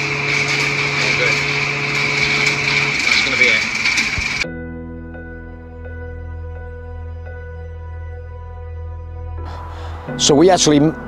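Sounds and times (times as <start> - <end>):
fuel pump humming and whining: 0.0 - 4.5.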